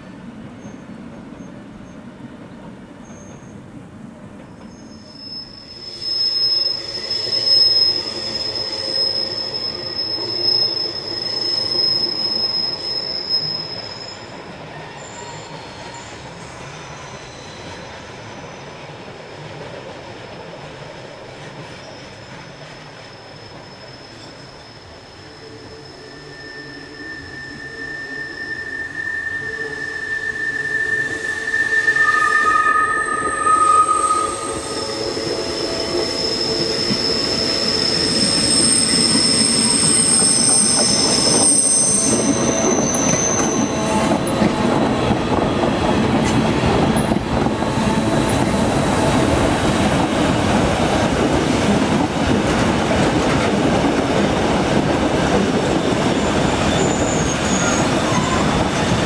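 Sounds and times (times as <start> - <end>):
train wheels squealing: 0.6 - 2.0, 3.0 - 3.6, 4.4 - 19.3, 20.5 - 59.0.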